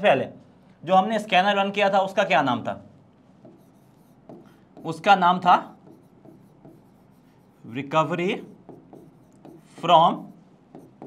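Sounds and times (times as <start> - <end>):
marker pen squeaking on board: 3.4 - 7.6, 8.4 - 11.0.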